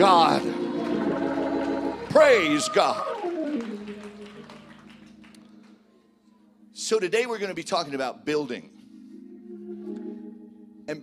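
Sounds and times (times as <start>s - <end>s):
church organ low sustained chord: 0.0s - 2.4s, 3.3s - 11.0s.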